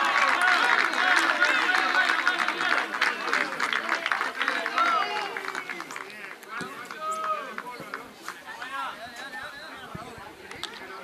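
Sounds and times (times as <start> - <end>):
men shouting and calling out: 0.0 - 9.9.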